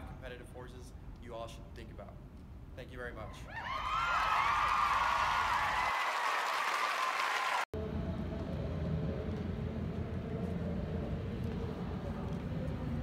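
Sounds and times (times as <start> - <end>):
applause and cheering: 3.6 - 7.7
low outdoor rumble: 7.8 - 13.0.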